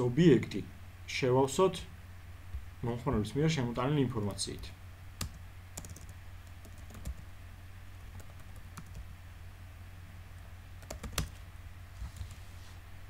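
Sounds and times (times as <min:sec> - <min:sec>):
low steady hum: 0:00.0 - 0:13.0
computer keyboard keystrokes: 0:05.2 - 0:07.2, 0:08.2 - 0:09.0, 0:10.8 - 0:11.4.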